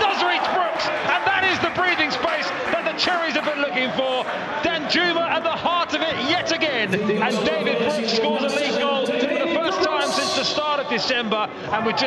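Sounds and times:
man commentating: 0:00.0 - 0:12.0.

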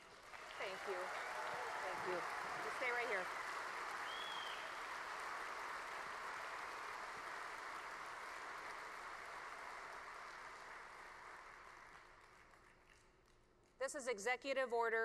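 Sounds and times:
audience applauding: 0:00.0 - 0:13.2.

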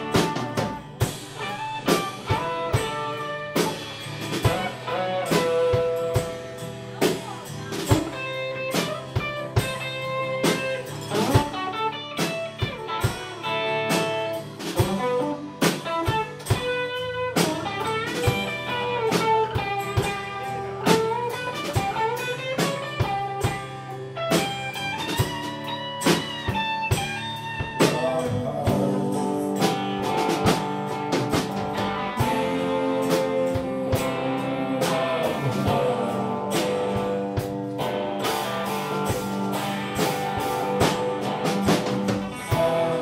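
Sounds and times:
acoustic guitar strumming: 0:00.0 - 0:43.0
bass line: 0:00.0 - 0:43.0
drum kit: 0:00.0 - 0:43.0
electric guitar melody: 0:00.0 - 0:43.0.

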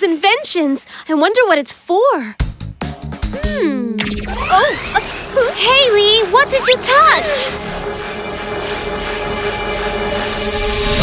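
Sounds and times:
electronic music: 0:06.4 - 0:07.6.

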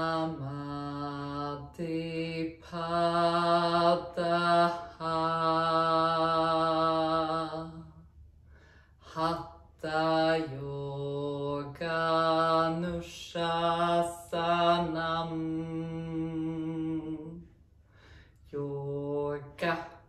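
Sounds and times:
woman chanting: 0:00.0 - 0:08.1, 0:09.0 - 0:17.5, 0:18.5 - 0:20.0.

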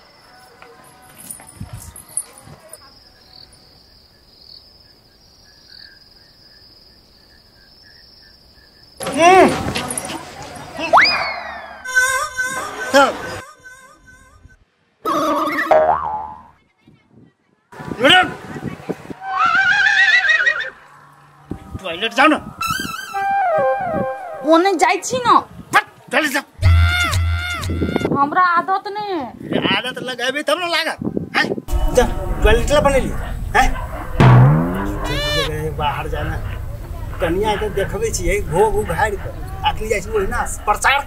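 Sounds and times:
crickets chirping: 0:00.0 - 0:10.9, 0:34.6 - 0:41.0
horse whinny: 0:19.2 - 0:20.8.

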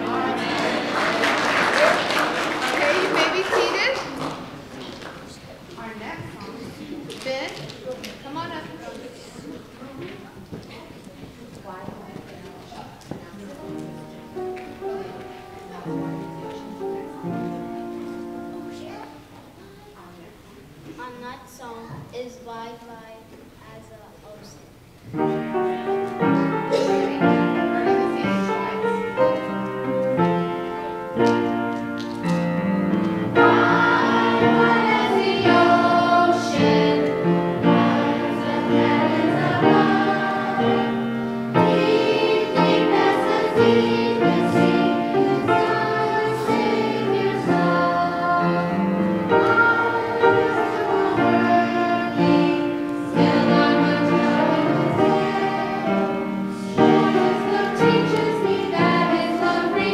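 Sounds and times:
child's footsteps: 0:03.8 - 0:20.1
faint voices talking quietly: 0:04.2 - 0:24.7
children singing into microphone: 0:26.2 - 0:29.6, 0:33.3 - 0:59.9.

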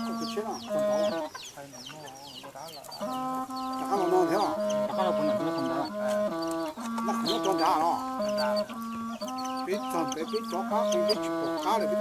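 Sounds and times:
melody of held notes: 0:00.0 - 0:01.4, 0:02.9 - 0:12.0
chickens clucking: 0:00.0 - 0:12.0.

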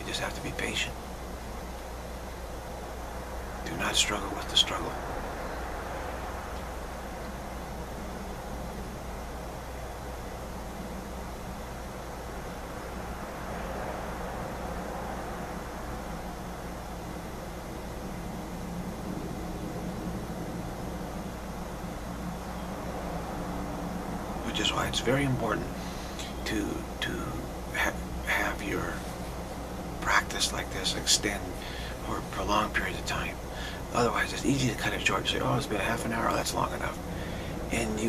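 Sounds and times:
low hum: 0:00.0 - 0:38.0
steady rushing noise: 0:00.0 - 0:38.0.

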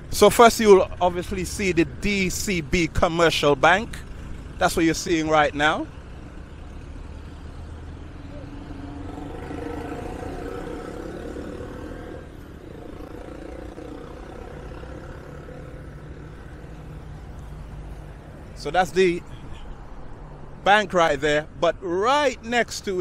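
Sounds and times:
traffic rumble: 0:00.0 - 0:23.0
vehicle engine passing: 0:00.9 - 0:20.6.

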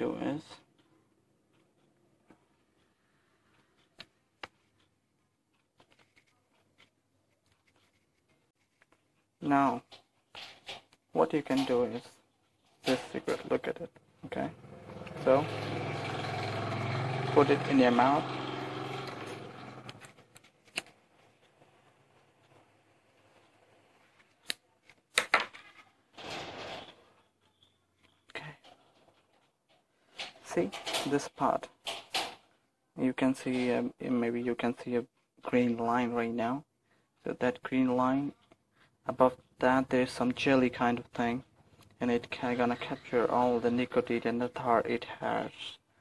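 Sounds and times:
phone being handled: 0:05.5 - 0:09.1.

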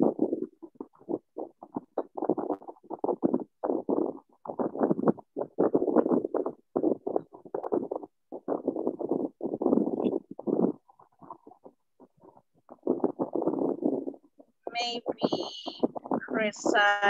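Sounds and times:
muffled speech over video call: 0:14.7 - 0:17.0.

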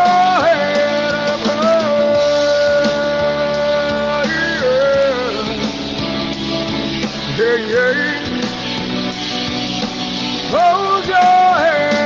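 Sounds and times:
backing track with guitar: 0:00.0 - 0:12.0.

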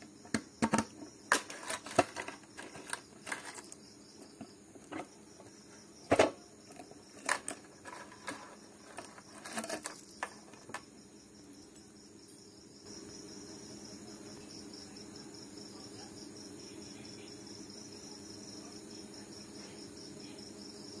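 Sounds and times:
crickets chirping: 0:00.0 - 0:21.0.

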